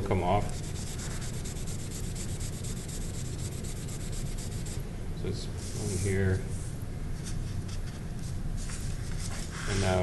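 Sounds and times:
pad rubbing on paper: 0.5s - 4.8s, 8.6s - 10.0s.

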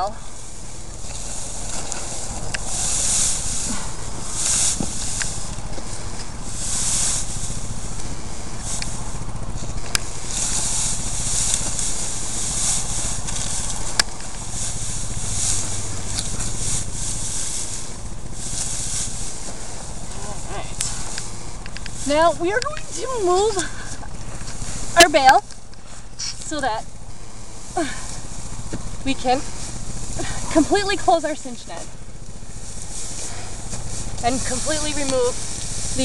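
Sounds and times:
low steady hum: 0.0s - 36.0s
net rustling over dry straw: 0.0s - 36.0s.

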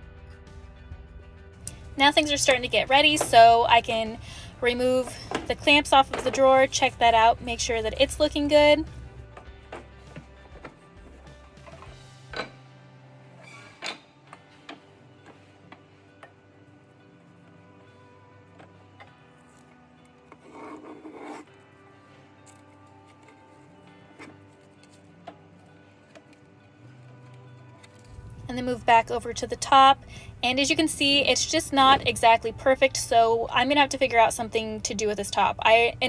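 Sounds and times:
soft background music: 0.0s - 36.0s
rubbing scrape: 20.4s - 21.5s.

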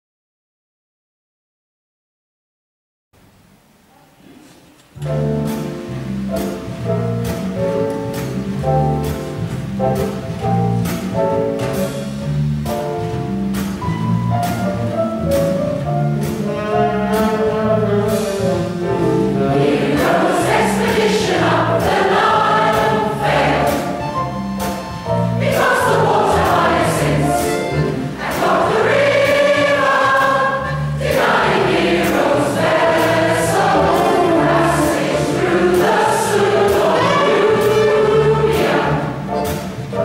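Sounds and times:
mixed choir singing: 19.0s - 24.1s, 25.3s - 39.3s.

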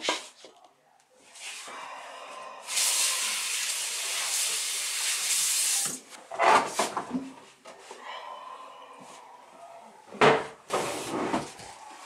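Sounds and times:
water running: 2.6s - 6.1s.

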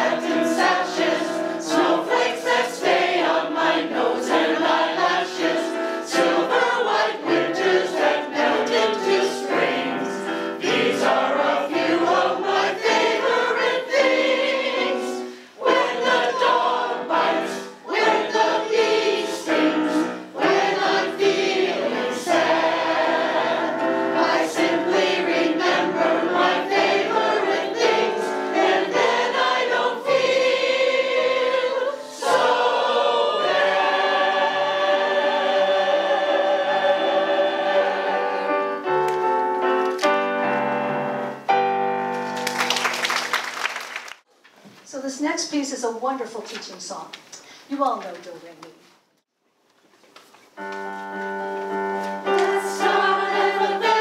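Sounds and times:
mixed choir singing in harmony: 0.0s - 39.6s, 52.0s - 54.0s
electric keyboard accompaniment: 32.2s - 43.0s, 50.5s - 54.0s.

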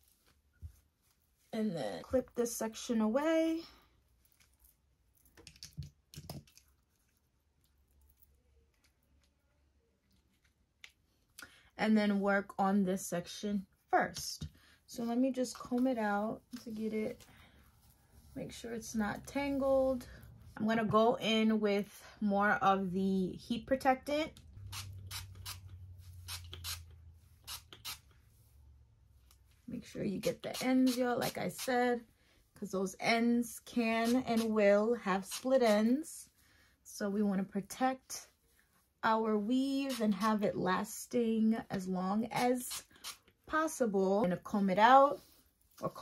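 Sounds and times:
faint clicks and rustles of hair: 0.0s - 11.6s, 13.9s - 21.1s, 42.4s - 46.0s.

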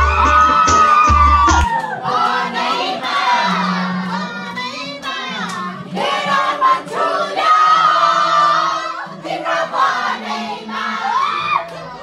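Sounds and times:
crowd singing and shouting: 0.0s - 12.0s.

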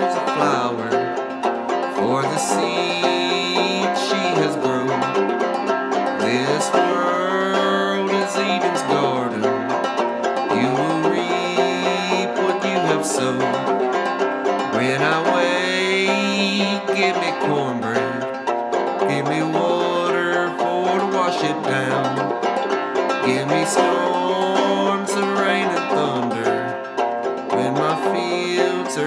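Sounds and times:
banjo played clawhammer style: 0.0s - 29.0s.

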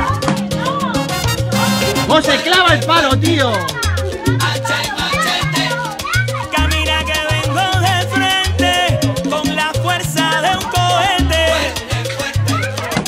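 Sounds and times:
upbeat salsa music: 0.0s - 13.0s.

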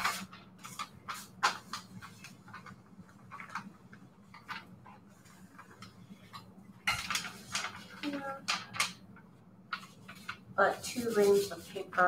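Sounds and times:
steam iron on paper: 0.0s - 2.4s, 10.1s - 12.0s
paper rustling: 0.0s - 9.0s, 9.7s - 12.0s.

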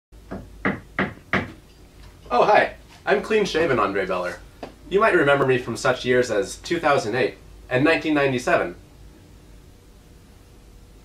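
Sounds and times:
knocking on wooden cabinet: 0.3s - 1.6s.

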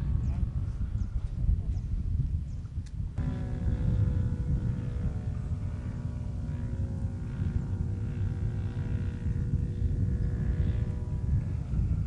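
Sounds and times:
model airplane engine droning: 0.0s - 12.0s
wind rumble on microphone: 0.0s - 12.0s.

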